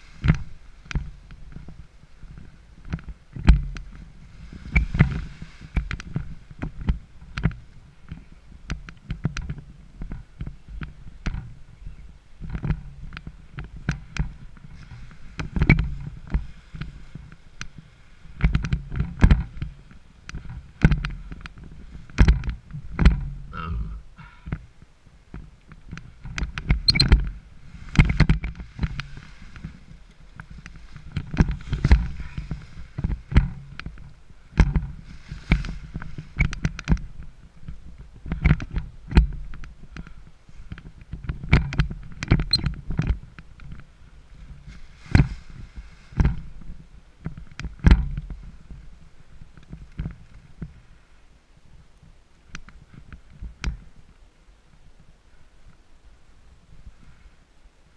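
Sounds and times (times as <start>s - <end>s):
nylon canopy fabric rustling: 0.0s - 23.6s, 24.6s - 57.9s
low bumps and rumbles: 0.0s - 51.0s.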